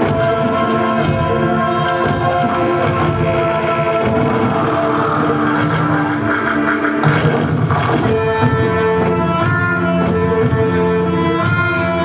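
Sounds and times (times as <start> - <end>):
dance music with held notes: 0.0 - 12.0.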